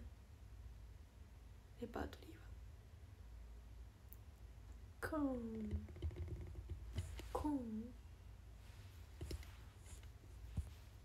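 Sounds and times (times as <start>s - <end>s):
faint low room hum: 0.0s - 11.0s
person speaking: 5.0s - 5.9s, 7.0s - 8.0s.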